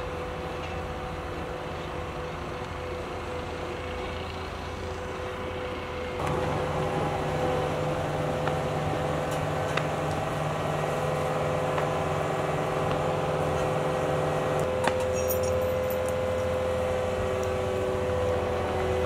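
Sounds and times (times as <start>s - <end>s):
diesel engine running: 0.0s - 19.0s.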